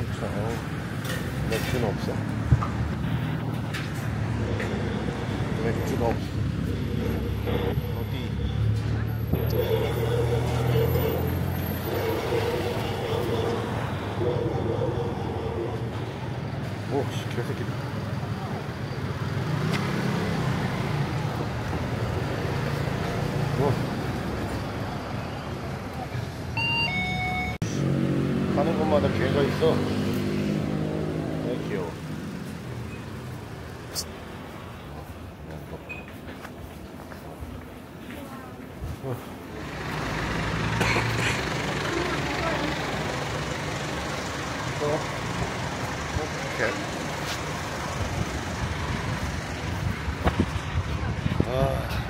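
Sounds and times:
motor scooter engines: 0.0 - 52.0.

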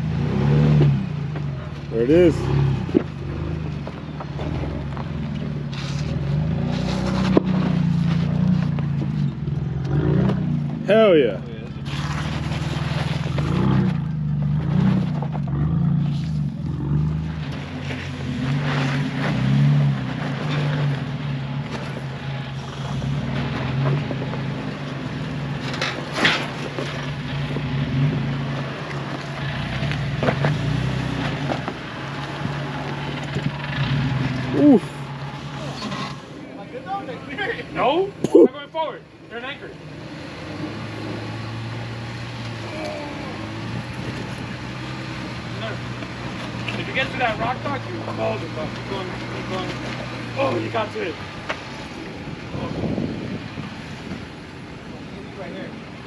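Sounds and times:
engine running at low revs: 0.0 - 38.5, 39.2 - 56.0.

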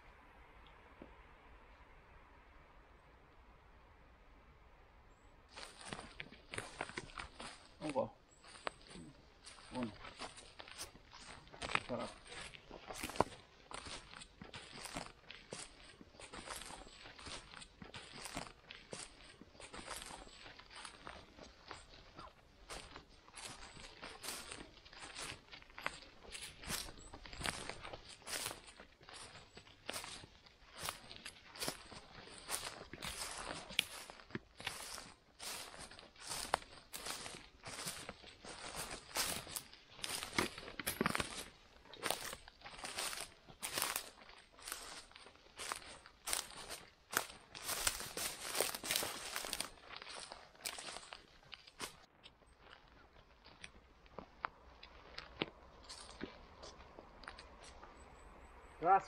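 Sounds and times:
dry leaves and twigs crackling: 5.1 - 59.0.

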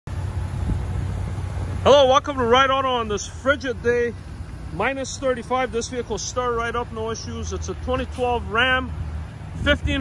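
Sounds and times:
car engine idling: 0.1 - 10.0
man talking: 1.8 - 9.0, 9.6 - 10.0.

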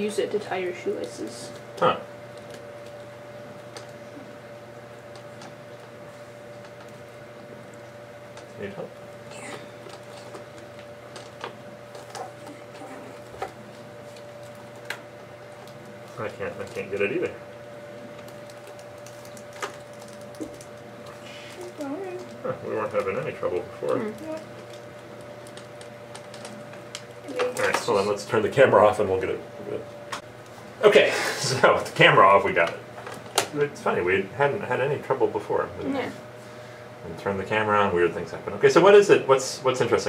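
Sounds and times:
faint steady whine: 0.0 - 40.0.

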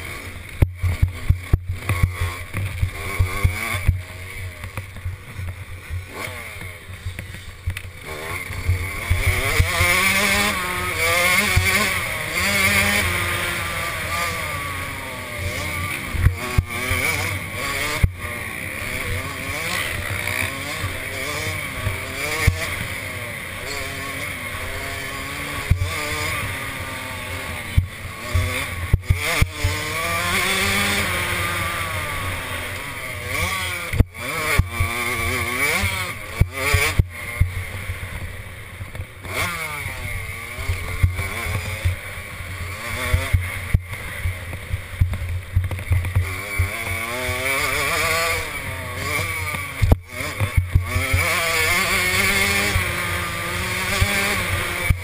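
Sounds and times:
motorbike engine revving: 0.0 - 55.0.

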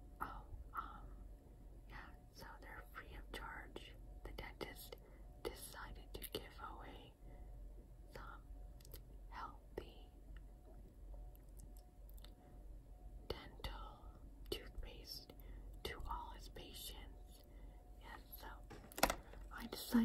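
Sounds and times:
woman whispering: 0.2 - 1.2, 1.8 - 7.2, 8.1 - 10.2, 13.3 - 18.7, 19.5 - 20.0.

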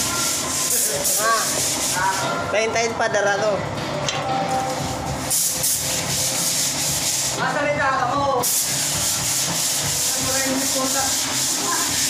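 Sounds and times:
hand sanding a wall: 0.0 - 2.2, 5.4 - 7.5, 8.4 - 12.0.

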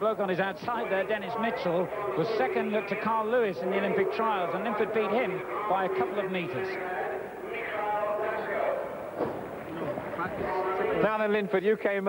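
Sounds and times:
indistinct background voices: 0.0 - 11.3.

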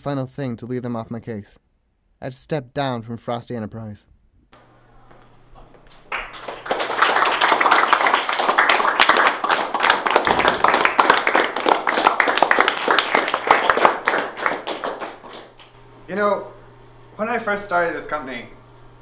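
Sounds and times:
people clapping: 4.6 - 15.7.

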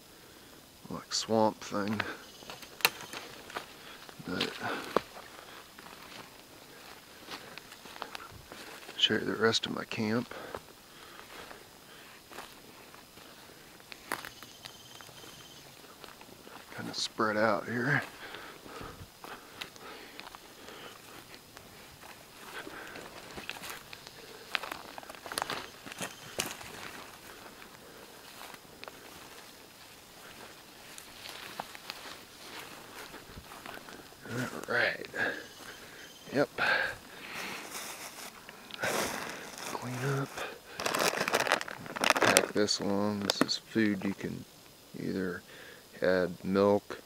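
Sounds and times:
leaves rustling: 1.6 - 43.6
footsteps through undergrowth: 1.8 - 36.3, 37.0 - 43.4
twigs snapping: 2.0 - 3.7
plastic food pouch crinkling: 39.1 - 43.4.

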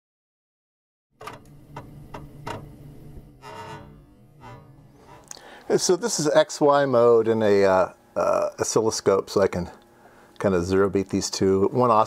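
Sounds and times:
steady low tone: 1.2 - 11.9.

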